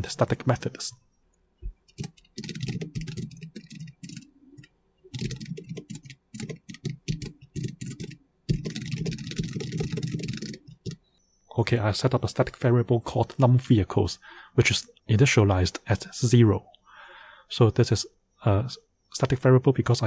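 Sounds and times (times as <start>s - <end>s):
computer keyboard typing: 1.8s - 11.0s.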